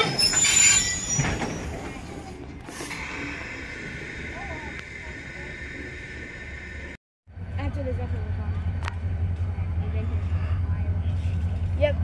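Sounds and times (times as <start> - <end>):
diesel locomotive engine rumbling: 0.0 - 12.0.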